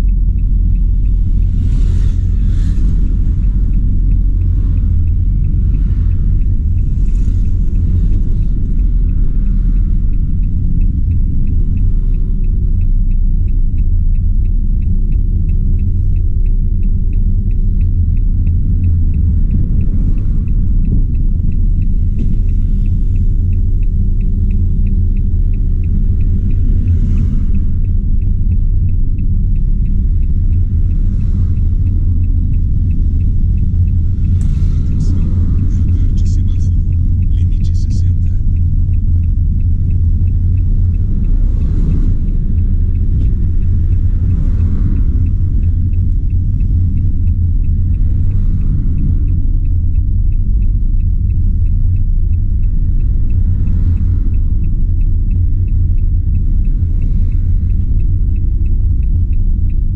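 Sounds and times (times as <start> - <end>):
fast even ticking: 0.0 - 59.9
road noise: 0.0 - 59.9
van engine rumble: 0.0 - 59.9.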